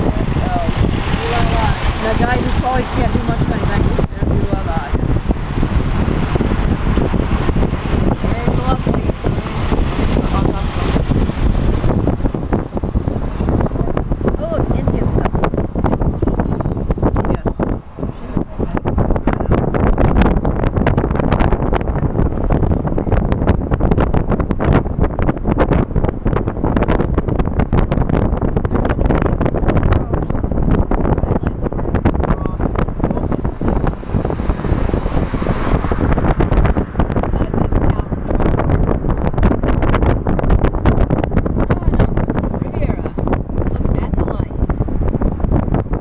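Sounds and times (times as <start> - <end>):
car driving road noise: 0.0 - 46.0
wind buffeting microphone: 0.0 - 46.0.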